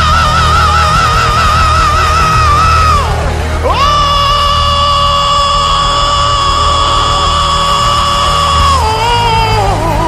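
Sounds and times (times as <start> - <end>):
band accompaniment: 0.0 - 10.0
gospel singer belting long note: 0.0 - 10.0.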